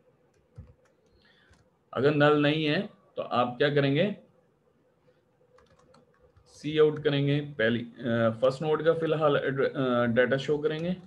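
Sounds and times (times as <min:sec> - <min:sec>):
keyboard typing: 0:00.3 - 0:01.8, 0:05.4 - 0:07.2.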